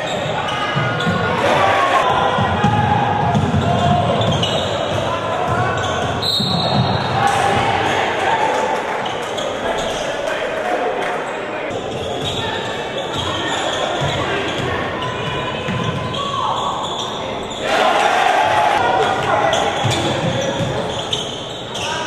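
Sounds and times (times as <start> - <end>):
crowd chatter: 0.0 - 22.0.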